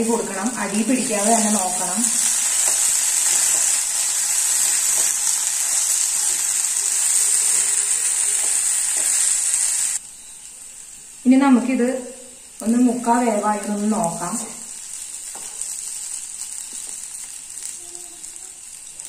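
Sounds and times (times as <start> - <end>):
food sizzling in oil: 0.0 - 19.0.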